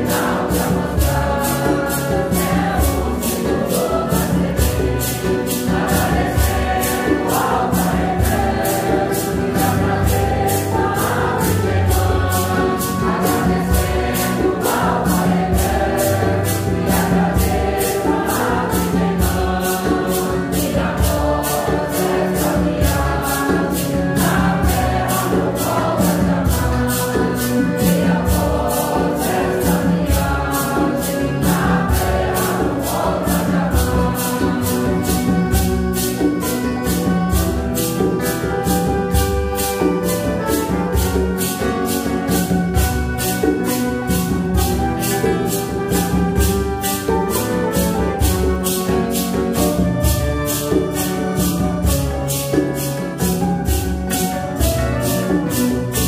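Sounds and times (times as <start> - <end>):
congregation singing a hymn: 0.0 - 56.0
maracas shaking: 0.0 - 56.0.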